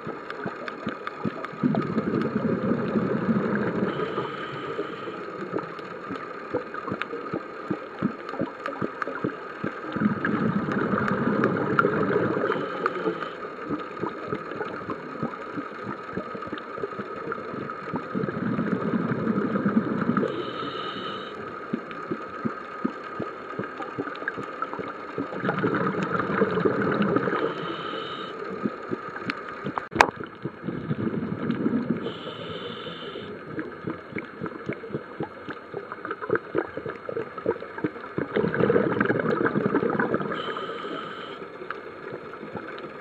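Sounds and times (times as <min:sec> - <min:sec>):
crackle of small clicks: 0:00.0 - 0:43.0
exhaled bubbles underwater: 0:00.0 - 0:43.0
regulator inhale hiss: 0:03.7 - 0:05.4, 0:12.3 - 0:13.5, 0:20.1 - 0:21.4, 0:27.3 - 0:28.5, 0:32.0 - 0:33.4, 0:40.3 - 0:41.6.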